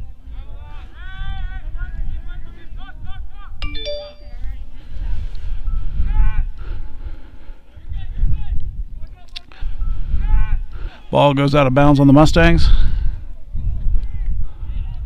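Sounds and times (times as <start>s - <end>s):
wind rumble on microphone: 0.0s - 3.6s, 4.8s - 10.8s, 12.2s - 15.0s
brief tone: 3.6s - 4.6s.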